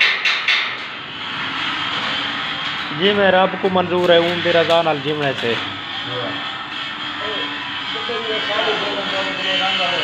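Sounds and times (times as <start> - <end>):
rapid hammer strikes on metal: 0.0 - 1.0
steady mechanical drone: 0.0 - 10.0.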